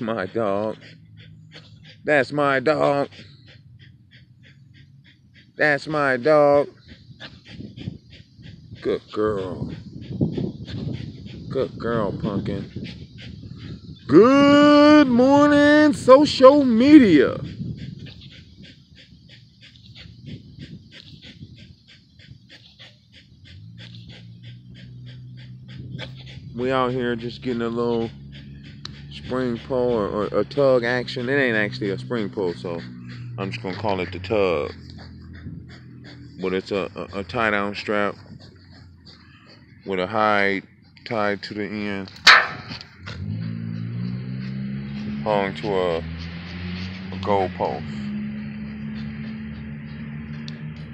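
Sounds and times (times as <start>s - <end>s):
dog breathing hard: 0.0s - 50.9s
steady low hum: 0.0s - 50.9s.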